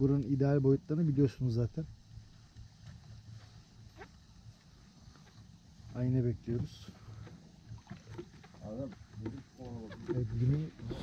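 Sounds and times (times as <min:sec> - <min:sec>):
foreground talk: 0:08.2 - 0:11.0.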